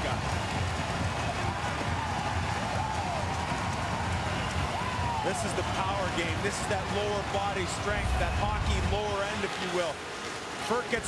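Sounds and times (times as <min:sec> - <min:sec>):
crowd cheering: 0:00.0 - 0:11.0.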